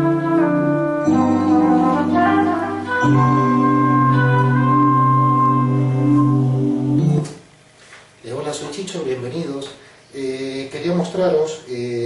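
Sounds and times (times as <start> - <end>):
synthesized electric guitar: 0.0 - 7.4.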